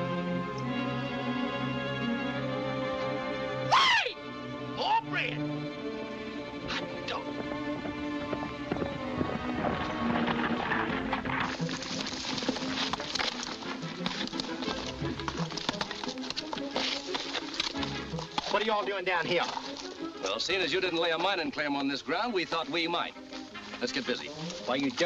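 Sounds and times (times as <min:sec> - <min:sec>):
film score music: 0:00.0 - 0:25.0
horses galloping hoofbeats: 0:06.1 - 0:25.0.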